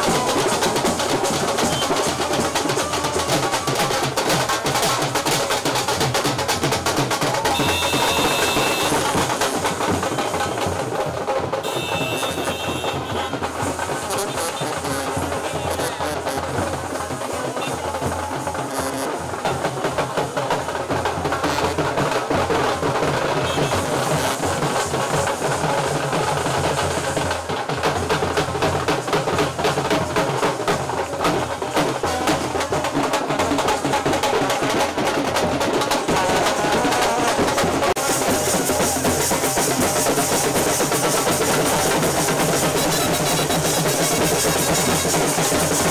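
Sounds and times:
procession band playing: 0.0s - 26.2s, 28.4s - 45.9s
rapid continuous drumming: 0.0s - 45.9s.

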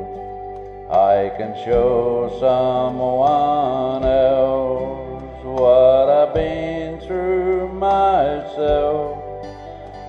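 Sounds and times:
instrumental backing: 0.0s - 10.0s
man singing country gospel: 0.9s - 10.0s.

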